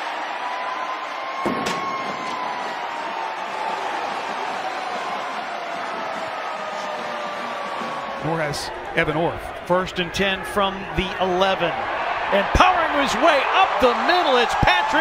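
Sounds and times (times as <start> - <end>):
stadium crowd cheering: 0.0 - 15.0.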